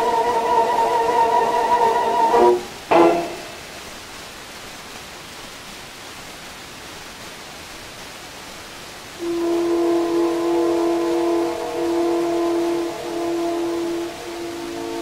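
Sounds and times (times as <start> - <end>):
orchestral chord: 0.0 - 3.7, 9.2 - 15.0
held orchestral note: 0.0 - 3.9, 9.2 - 15.0
record surface hiss: 0.0 - 15.0.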